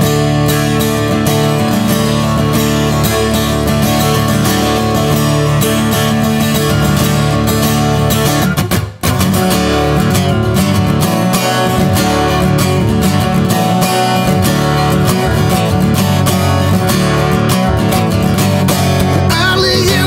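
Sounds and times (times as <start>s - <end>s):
acoustic guitar strumming: 0.0s - 20.0s.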